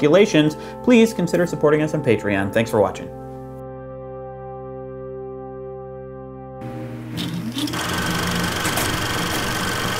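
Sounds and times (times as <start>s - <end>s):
film projector motor clattering: 7.2s - 9.9s.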